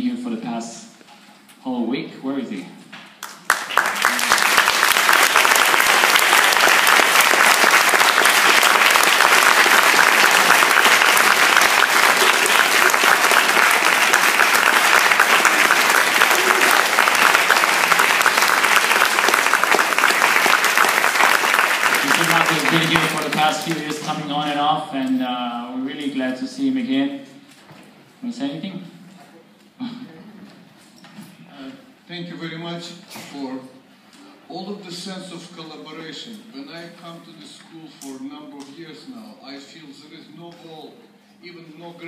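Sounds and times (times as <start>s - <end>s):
audience applauding: 3.2s - 24.6s
man's voice: 22.0s - 27.1s.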